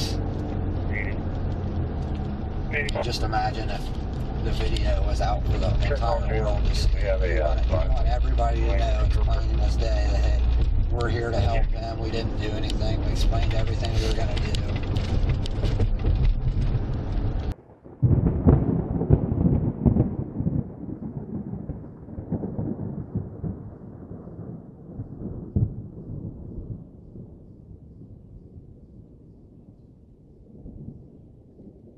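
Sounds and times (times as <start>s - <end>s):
car cabin noise: 0.0s - 17.6s
low rolling rumble: 0.0s - 31.9s.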